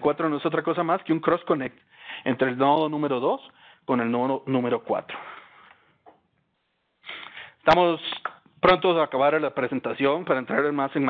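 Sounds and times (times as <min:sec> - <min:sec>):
man's voice: 0:00.0 - 0:05.2, 0:07.6 - 0:11.0.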